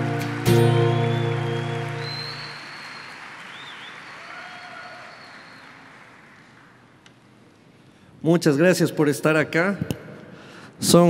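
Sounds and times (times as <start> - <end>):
acoustic guitar chord ringing: 0.0 - 2.6.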